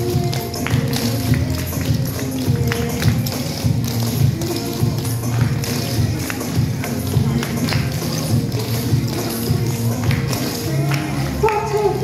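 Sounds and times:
song playing: 0.0 - 12.0.

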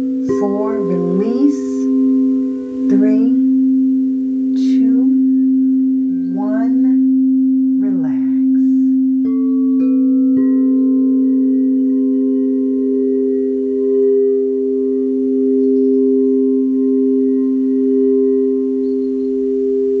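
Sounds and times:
crystal singing bowls ringing: 0.0 - 20.0
mallet striking bowls: 0.0 - 20.0.

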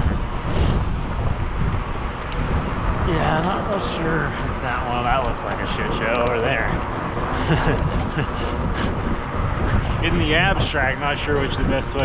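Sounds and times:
road noise: 0.0 - 12.0
traffic: 0.0 - 12.0
wind on microphone: 0.0 - 12.0.

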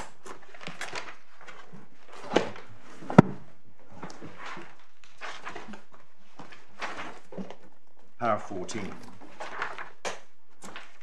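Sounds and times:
paper pages rustling: 0.0 - 3.0, 4.0 - 7.8, 8.7 - 11.0.

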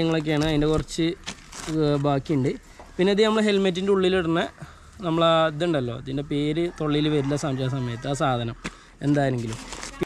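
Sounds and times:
paper sheet crinkling: 0.0 - 2.2, 9.1 - 10.0
man talking: 0.0 - 9.6.

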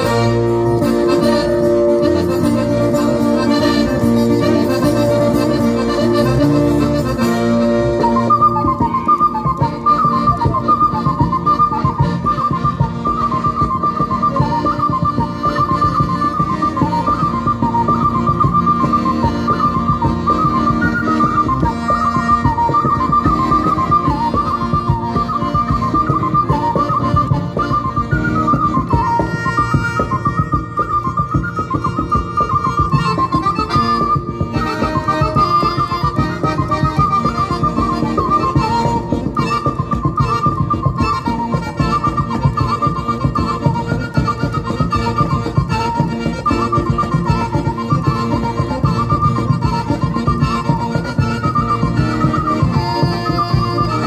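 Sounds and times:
accordion chords: 0.0 - 54.0
high ornamented wind instrument: 0.0 - 54.0.

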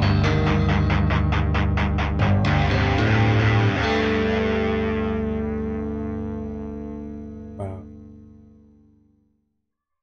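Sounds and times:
heavy metal guitar and bass: 0.0 - 8.3.

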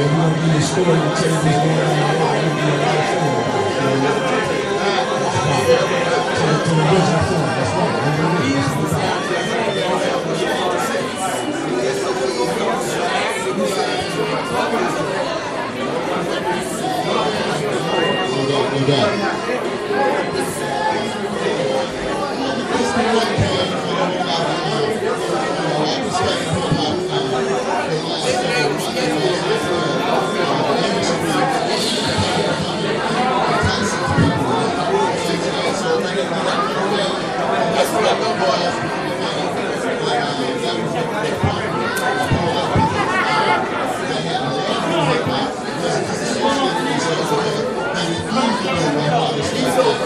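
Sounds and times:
people talking: 0.0 - 50.0
voices chattering: 0.0 - 50.0.

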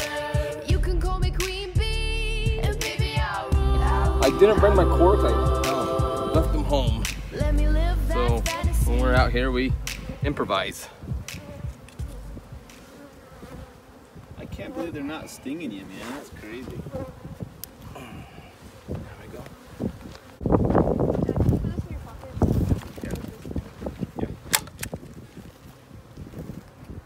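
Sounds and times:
honeybees buzzing: 2.6 - 24.4.

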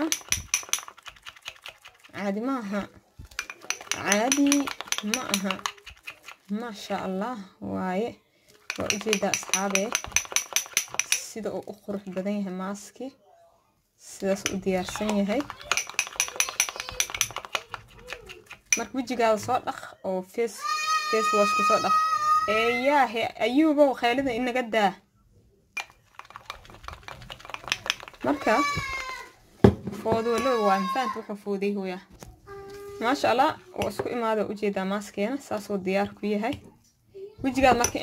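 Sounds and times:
spoon clinking against glass bowl: 3.4 - 6.1, 8.7 - 11.3, 14.4 - 18.9.

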